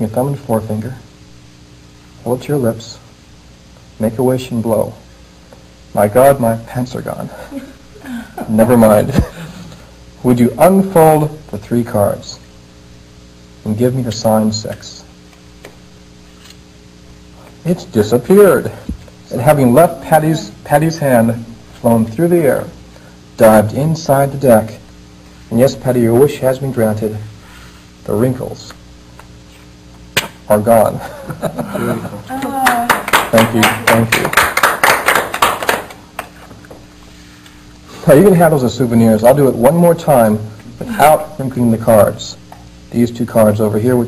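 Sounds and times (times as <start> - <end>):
steady low hum: 0.0 - 44.0
small audience applauding: 32.4 - 36.4.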